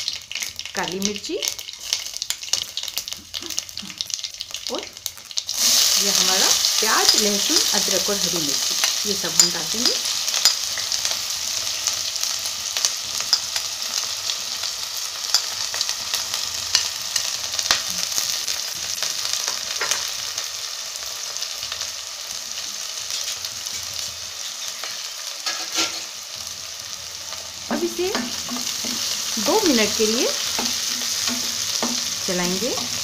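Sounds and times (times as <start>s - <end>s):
vegetables sizzling in hot oil: 0.0s - 33.0s.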